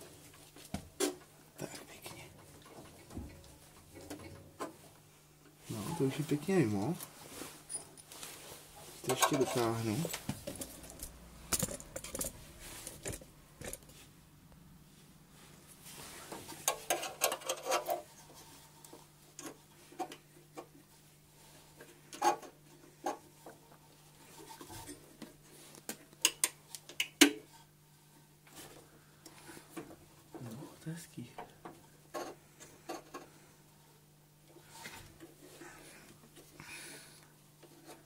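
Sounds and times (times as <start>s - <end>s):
small metal parts clinking: 10.6s - 13.8s.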